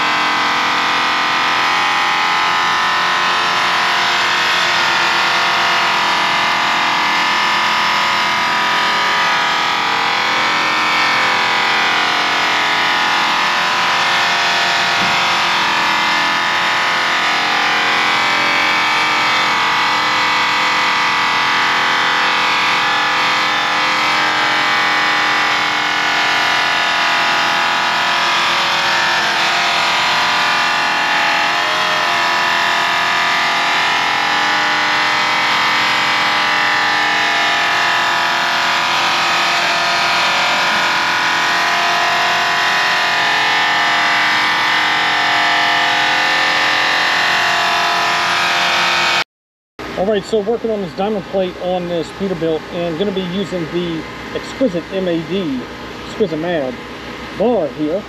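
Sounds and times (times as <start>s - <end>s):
electric polisher buffing metal: 0.0s - 49.2s.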